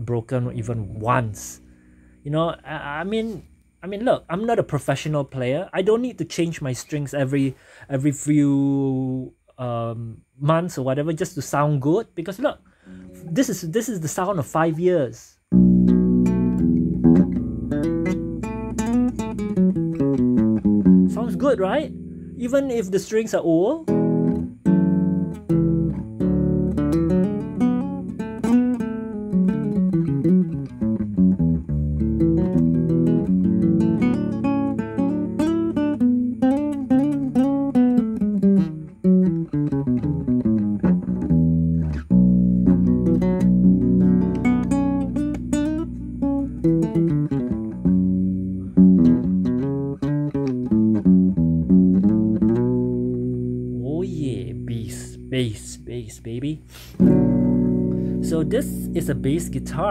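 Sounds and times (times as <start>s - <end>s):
fingerpicked classical guitar: 0.1s - 5.5s, 12.4s - 14.8s, 15.4s - 59.9s.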